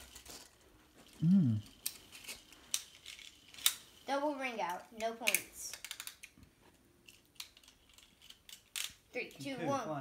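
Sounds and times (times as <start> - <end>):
small plastic clicks: 5.0 - 6.4.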